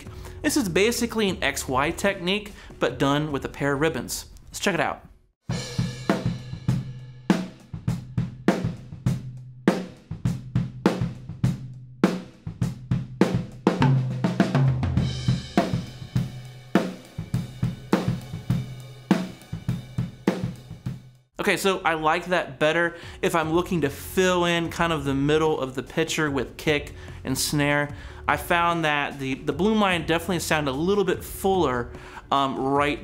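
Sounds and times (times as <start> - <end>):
drum kit playing a groove: 0.0 - 3.8, 5.4 - 21.2, 21.8 - 33.0.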